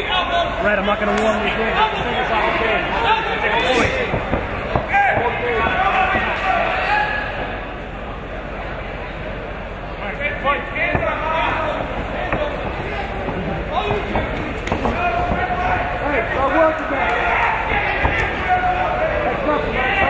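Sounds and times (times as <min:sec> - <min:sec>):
crowd noise: 0:00.0 - 0:20.0
people shouting: 0:01.7 - 0:07.5, 0:10.9 - 0:20.0.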